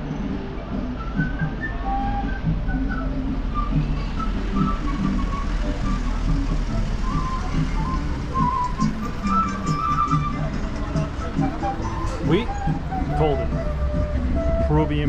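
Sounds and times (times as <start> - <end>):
folk music with flute melody: 0.0 - 15.0
minibus engine rumble: 0.0 - 15.0.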